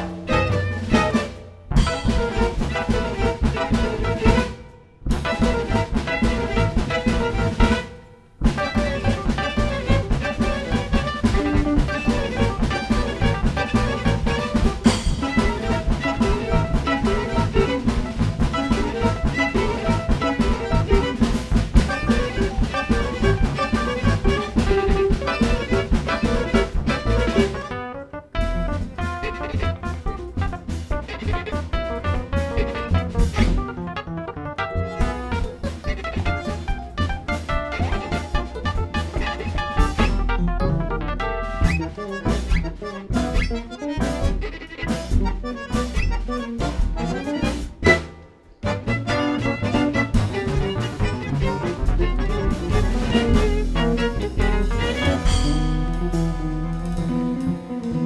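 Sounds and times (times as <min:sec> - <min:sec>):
tango band playing live: 0:00.0 - 0:58.0.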